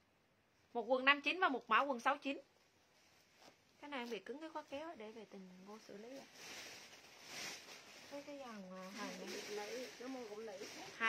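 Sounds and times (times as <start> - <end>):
woman speaking: 0.8 - 2.4, 3.8 - 6.3, 8.1 - 11.0
clothing rustling: 2.5 - 11.0.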